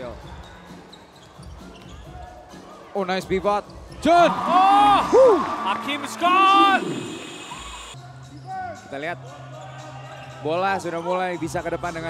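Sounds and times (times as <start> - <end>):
low court and crowd noise: 0.0 - 12.0
commentator speaking: 4.0 - 7.4.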